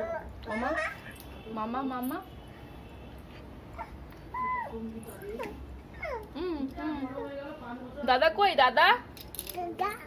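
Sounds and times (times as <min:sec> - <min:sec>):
toddler babbling: 0:03.8 - 0:04.8, 0:05.4 - 0:06.4, 0:09.6 - 0:10.0.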